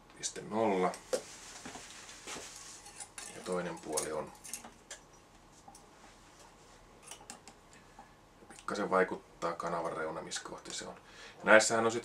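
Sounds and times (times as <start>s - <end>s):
soft rustling: 0.9s - 7.0s.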